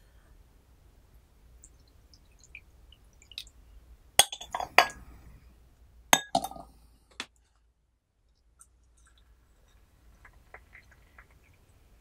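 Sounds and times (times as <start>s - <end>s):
glass teaware clinking: 4.2s - 5.1s, 6.2s - 6.7s.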